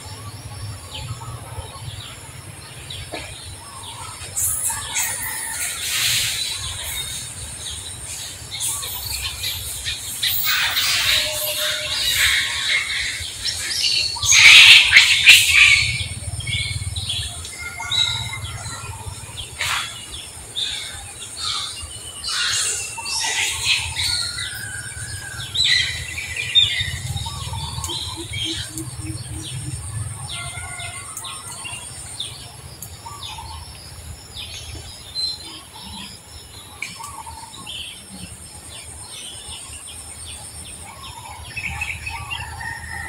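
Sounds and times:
birds chirping: 0.0s - 43.0s.

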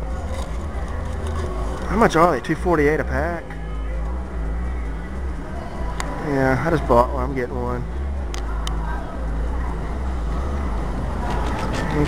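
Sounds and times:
low rumble of handled camera: 0.0s - 2.1s, 8.2s - 12.0s.

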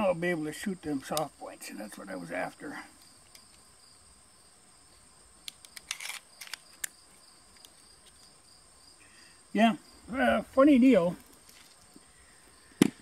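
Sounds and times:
crickets chirring: 0.0s - 13.0s
pistol parts clicking: 5.4s - 7.0s.

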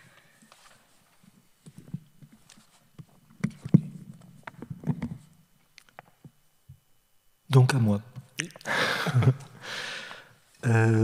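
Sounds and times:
microphone handling knocks and clicks: 1.6s - 5.3s.

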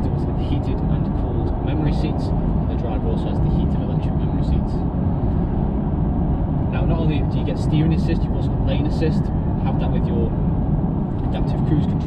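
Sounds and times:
road and tyre noise: 0.0s - 12.0s.

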